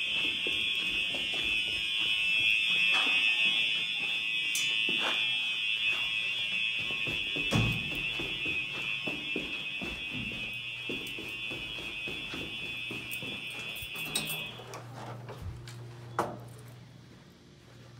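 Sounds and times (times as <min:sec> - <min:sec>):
footsteps on carpeted stairs: 0:00.0 - 0:04.2, 0:05.8 - 0:14.7
fire alarm horns steady tone: 0:00.0 - 0:17.8.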